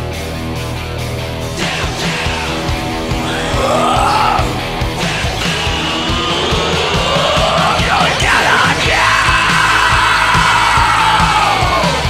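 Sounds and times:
hard rock music: 0.0 - 12.0
wailing lead line: 2.4 - 12.0.

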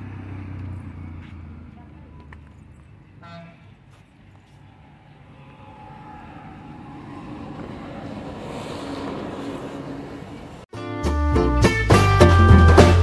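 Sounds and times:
vehicle engine approaching: 0.0 - 3.2, 3.8 - 10.7
road noise: 0.0 - 10.8.

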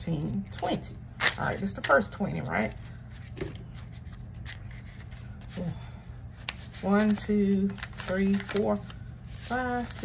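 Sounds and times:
low steady hum: 0.0 - 10.0
banknotes rustling: 0.5 - 10.0.

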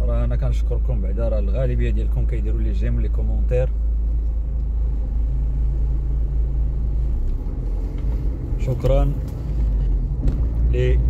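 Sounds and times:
diesel machinery engine rumble: 0.0 - 11.0.

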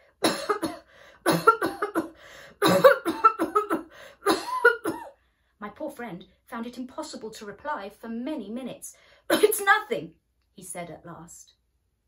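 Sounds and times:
woman coughing: 0.2 - 5.2, 9.3 - 9.7.

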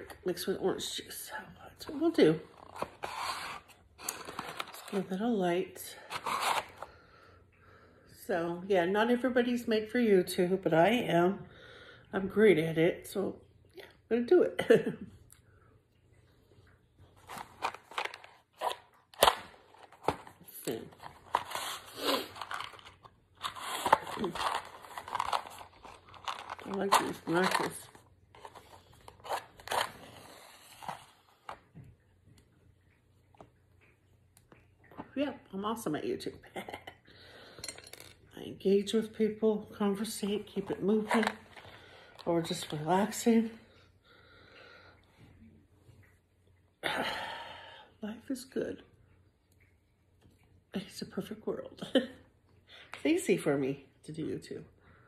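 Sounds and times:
match scraping on matchbox: 6.1 - 6.9, 20.7 - 31.2.

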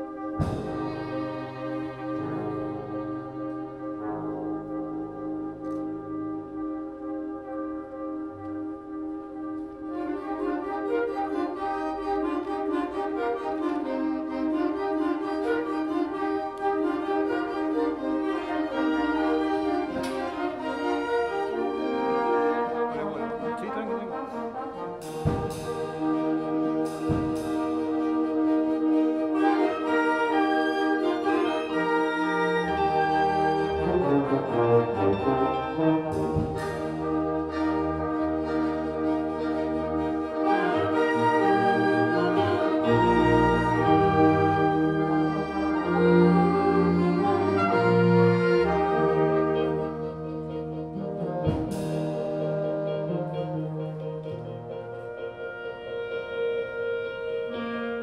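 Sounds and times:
brass section playing: 0.0 - 58.0
orchestra playing: 0.0 - 58.0.

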